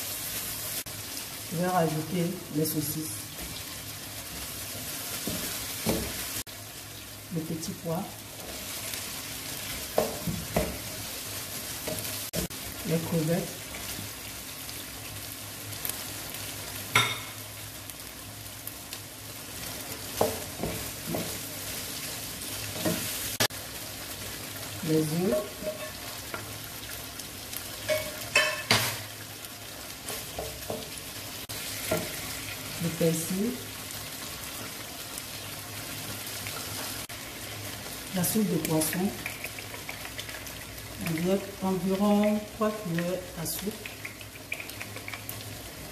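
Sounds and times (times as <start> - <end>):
food sizzling in a wok: 0.0 - 45.9.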